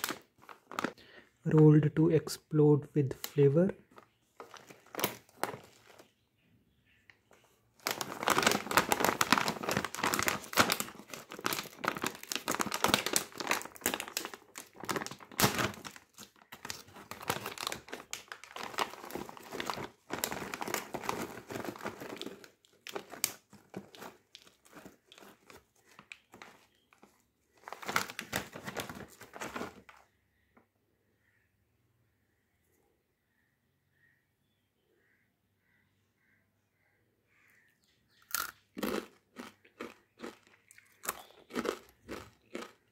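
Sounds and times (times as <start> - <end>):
snack packet crinkling: 0.0 - 1.2, 3.2 - 6.1, 7.8 - 30.0, 38.3 - 42.9.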